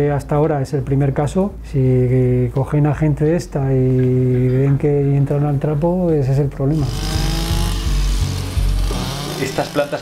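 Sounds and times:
background music with bass line: 0:06.7 - 0:10.0
brushcutter cutting plants: 0:06.8 - 0:10.0.

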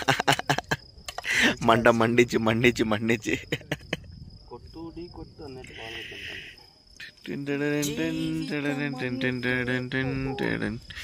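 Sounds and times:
crickets chirping: 0:00.0 - 0:11.0
faint voice: 0:07.6 - 0:11.0.

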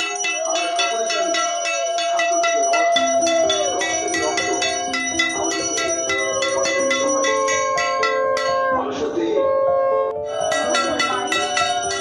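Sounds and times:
hand bell ringing: 0:00.0 - 0:08.8, 0:10.3 - 0:12.0.

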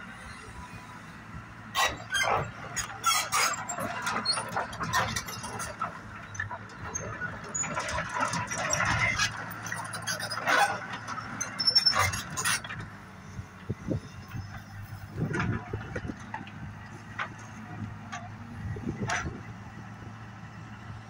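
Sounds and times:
excavator engine humming: 0:00.0 - 0:21.0
metallic squeals and clanks: 0:01.7 - 0:16.5.

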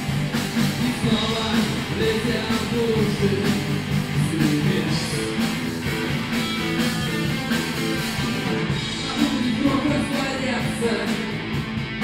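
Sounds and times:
bass guitar: 0:00.0 - 0:12.0
drums: 0:00.0 - 0:12.0
electric guitar: 0:00.0 - 0:12.0.

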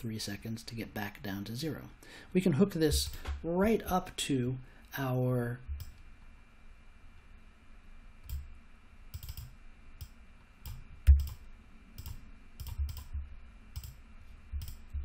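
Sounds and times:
computer keyboard keystrokes: 0:09.1 - 0:11.4, 0:12.0 - 0:13.1, 0:13.8 - 0:14.0, 0:14.6 - 0:14.9.

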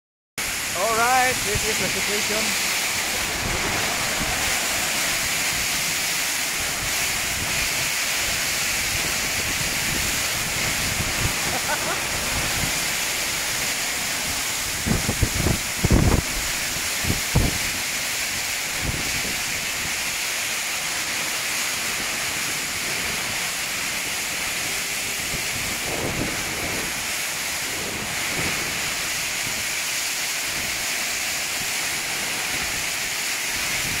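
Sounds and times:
strong wind: 0:00.4 - 0:30.9, 0:31.6 - 0:34.0
heavy wind-driven rain: 0:00.4 - 0:34.0
gusts buffeting microphone: 0:00.5 - 0:17.8, 0:24.2 - 0:29.7.

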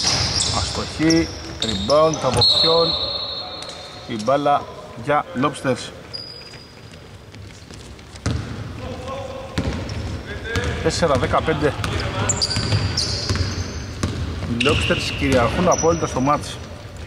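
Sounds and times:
sneaker squeaks: 0:00.0 - 0:04.9, 0:05.8 - 0:08.7, 0:09.5 - 0:16.6
players' voices: 0:00.3 - 0:06.2, 0:08.2 - 0:16.9
basketball dribbling on hardwood: 0:08.2 - 0:08.6, 0:12.6 - 0:14.6.

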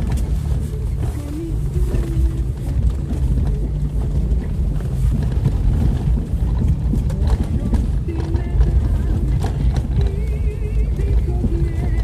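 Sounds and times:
knocks and rattles: 0:00.0 - 0:12.0
vehicle driving on rough dirt track: 0:00.0 - 0:12.0.

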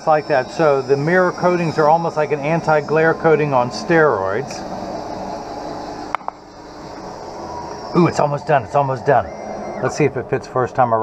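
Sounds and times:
faint machine whine: 0:00.0 - 0:11.0
lens edger machine cutting: 0:00.0 - 0:11.0.

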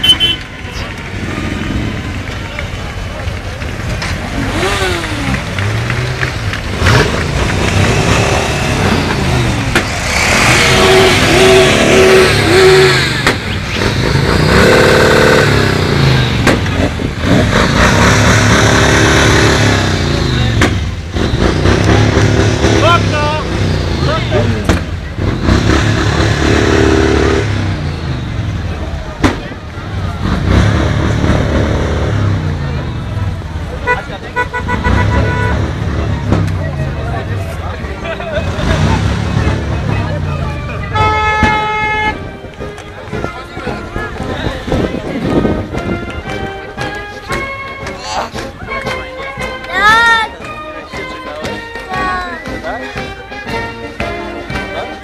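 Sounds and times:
motorcycle horns: 0:00.0 - 0:02.8, 0:04.3 - 0:22.1, 0:22.8 - 0:28.6, 0:32.0 - 0:36.5, 0:38.3 - 0:49.8
motorcycles revving past: 0:00.8 - 0:29.0, 0:34.8 - 0:40.9.

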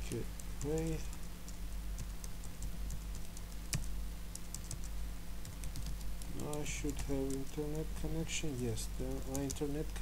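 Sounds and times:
low steady hum: 0:00.0 - 0:10.0
keyboard typing: 0:00.1 - 0:07.7, 0:09.2 - 0:09.9.

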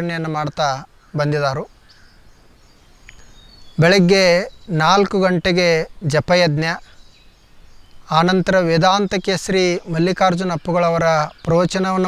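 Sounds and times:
faint bird chirps: 0:00.0 - 0:12.0
faint outdoor background noise: 0:00.0 - 0:12.0.

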